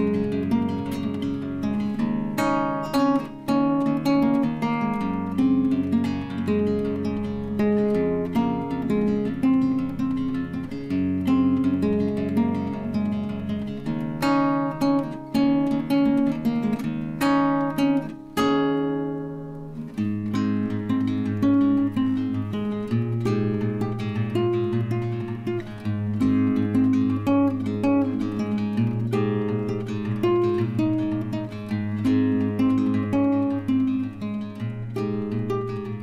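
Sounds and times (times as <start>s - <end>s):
acoustic guitar strumming: 0.0s - 36.0s.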